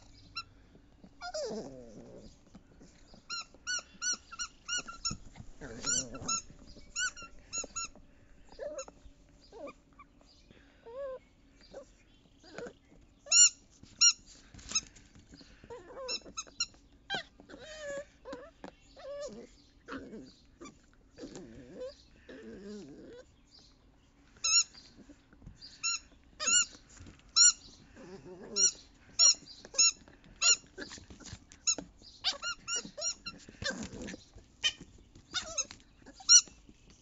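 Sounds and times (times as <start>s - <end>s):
puppy chewing rubber toy: 0.0s - 10.0s, 12.4s - 23.1s, 24.4s - 37.0s
puppy growling: 0.0s - 10.2s, 10.8s - 13.0s, 14.5s - 23.4s, 27.8s - 36.5s
toy squeaks: 3.3s - 9.0s, 13.3s - 14.8s, 16.0s - 19.3s, 24.4s - 24.8s, 25.8s - 26.8s, 27.4s - 27.6s, 28.6s - 36.6s.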